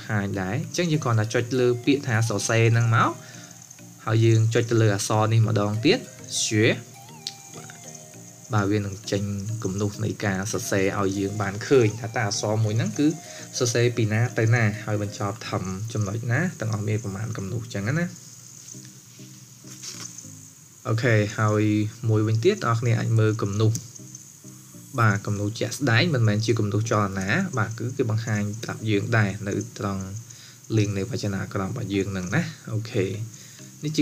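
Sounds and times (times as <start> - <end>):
person speaking: 0.0 - 18.2, 24.9 - 34.0
faint hums: 0.0 - 34.0
faint steady hiss: 0.0 - 34.0.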